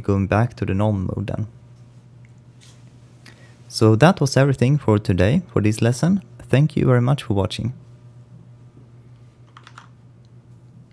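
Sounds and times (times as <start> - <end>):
low steady hum: 0.0 - 10.9
computer keyboard key presses: 9.5 - 9.9.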